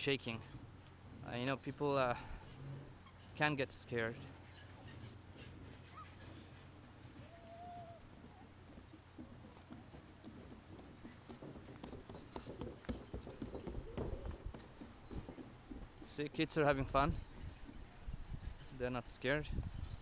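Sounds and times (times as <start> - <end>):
footsteps on wooden planks: 4.4 - 17.9.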